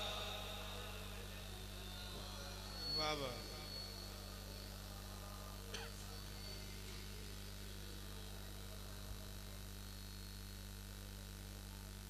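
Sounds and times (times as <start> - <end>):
faint high whine: 0.0 - 12.0
low electrical hum: 0.0 - 12.0.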